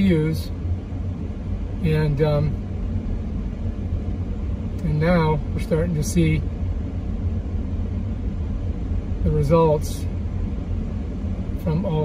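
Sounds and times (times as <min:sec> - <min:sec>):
car driving heard from inside: 0:00.0 - 0:12.0.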